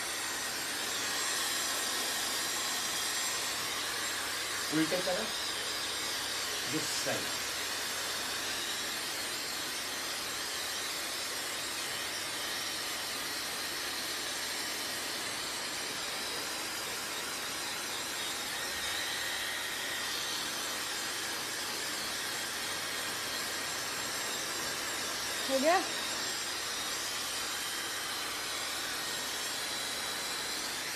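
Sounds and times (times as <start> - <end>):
hair dryer running: 0.0 - 30.9.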